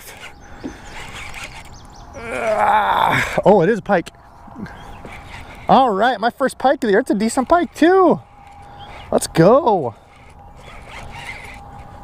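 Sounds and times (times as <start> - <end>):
fishing reel cranking: 0.0 - 2.0, 4.8 - 12.0.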